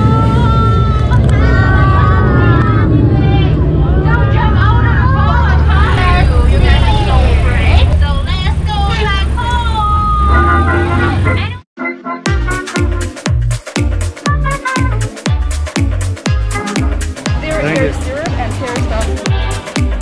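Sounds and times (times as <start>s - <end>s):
boat motor rumbling: 0.0s - 11.6s, 14.4s - 20.0s
passengers' voices: 0.1s - 11.5s.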